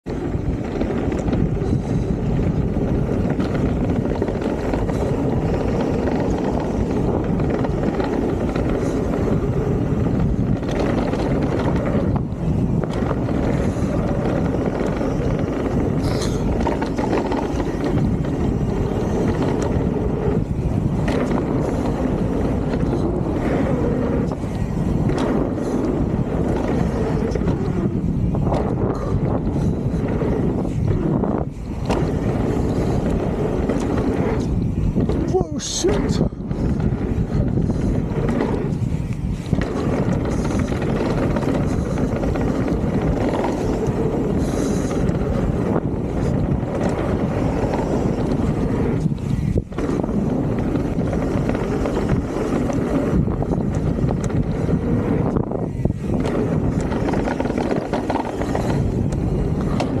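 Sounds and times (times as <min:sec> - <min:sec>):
bike tyre rush on gravel: 0:00.0 - 1:00.0
wind on microphone: 0:00.0 - 1:00.0
bike knocks and clatters: 0:00.1 - 0:35.3, 0:36.1 - 1:00.0.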